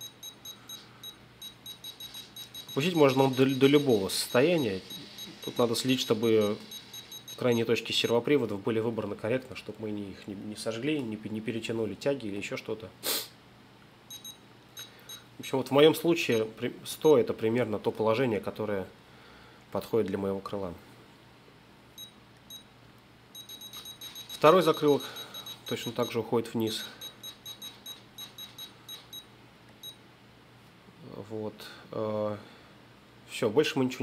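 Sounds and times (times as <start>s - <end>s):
short high beeps: 0.0s - 7.7s, 14.1s - 15.2s, 23.4s - 30.0s
short hissing burst: 13.0s - 13.4s.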